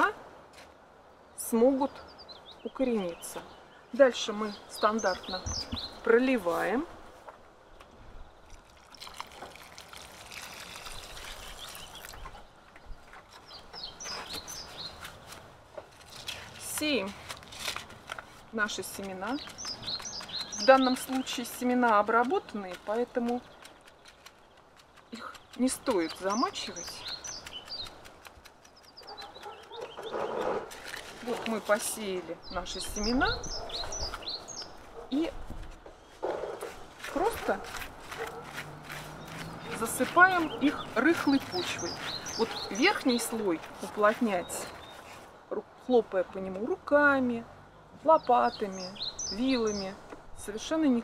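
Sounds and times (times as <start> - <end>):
small birds chirping: 1.1 - 6.9, 7.7 - 15.4, 16.1 - 51.0
water trickling onto soil: 8.4 - 34.8, 36.8 - 45.4.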